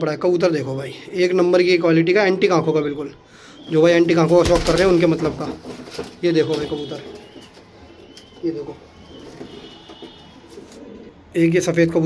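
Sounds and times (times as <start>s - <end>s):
pigeons cooing: 3.4s - 11.3s.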